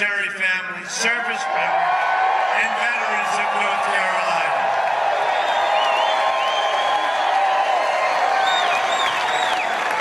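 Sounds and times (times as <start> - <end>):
crowd cheering and applauding: 1.0 - 10.0
people whooping: 1.4 - 10.0
shrill whistles: 5.2 - 9.9.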